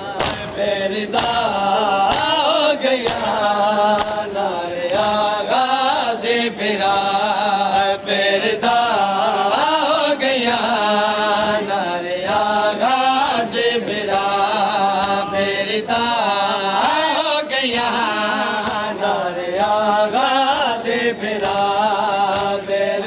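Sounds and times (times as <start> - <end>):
person chanting lament: 0.0 - 23.0
hands beating on chests: 0.2 - 1.5, 2.1 - 2.4, 3.0 - 4.2.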